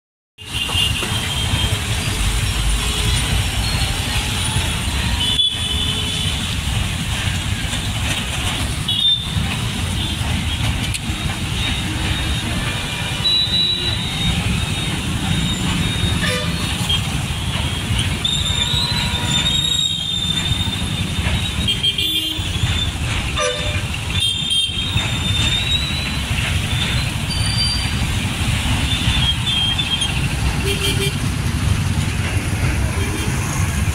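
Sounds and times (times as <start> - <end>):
engine and road rumble: 0.4 - 33.9
vehicle horn toots: 16.2 - 17.0, 23.4 - 24.8.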